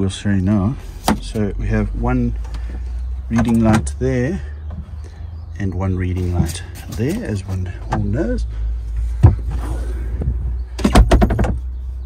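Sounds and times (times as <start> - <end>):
knocks and rattles: 10.2 - 11.8.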